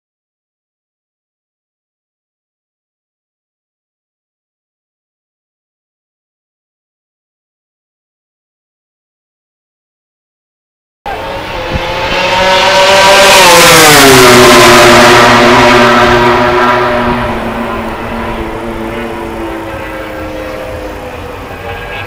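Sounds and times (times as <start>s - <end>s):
racing motorcycle passing: 11.1s - 22.0s.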